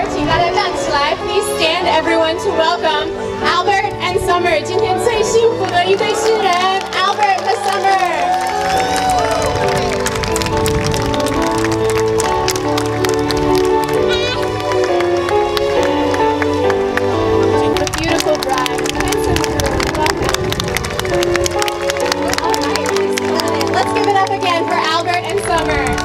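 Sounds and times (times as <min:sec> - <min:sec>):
music with held notes: 0:00.0 - 0:26.0
crowd clapping: 0:05.5 - 0:26.0
crowd calling out: 0:06.1 - 0:10.0.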